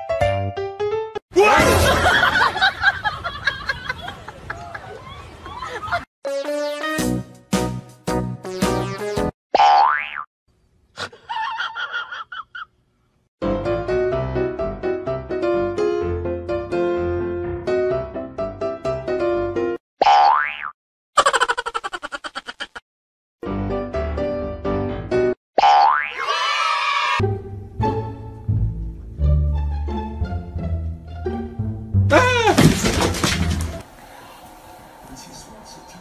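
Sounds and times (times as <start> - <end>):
background music: 6.3 - 9.3, 27.2 - 32.5
comedic boing sound effect: 9.6 - 10.3, 20.0 - 20.7, 25.6 - 26.2.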